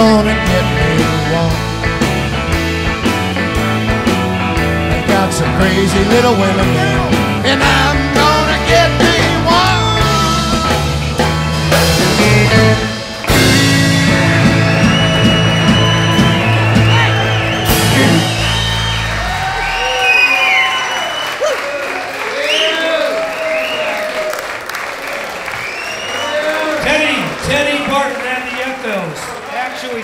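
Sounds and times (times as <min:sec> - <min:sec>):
live rock band playing: 0:00.0 - 0:21.0
audience applauding and cheering: 0:07.9 - 0:30.0.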